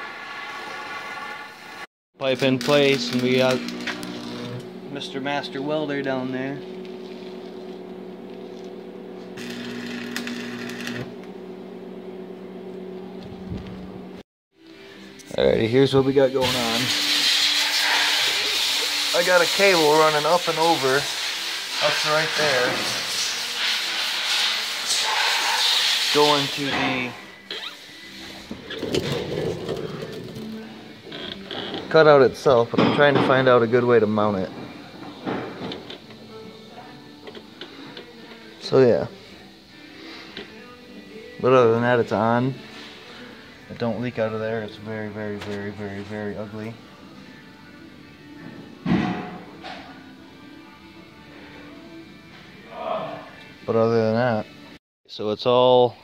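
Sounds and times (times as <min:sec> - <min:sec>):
welding arc crackling: 0:00.4 - 0:04.6, 0:09.4 - 0:11.1
arc welder humming: 0:00.4 - 0:14.2, 0:16.1 - 0:31.7
faint background music: 0:02.2 - 0:07.1, 0:14.6 - 0:56.0.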